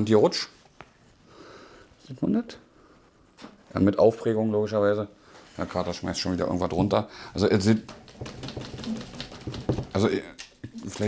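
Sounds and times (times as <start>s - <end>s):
clicks and knocks from wooden desk: 7.8s - 10.0s.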